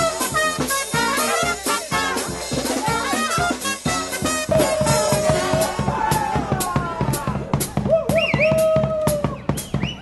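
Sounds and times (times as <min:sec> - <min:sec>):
drum beats: 0:00.0 - 0:10.0
street brass band playing: 0:00.0 - 0:10.0.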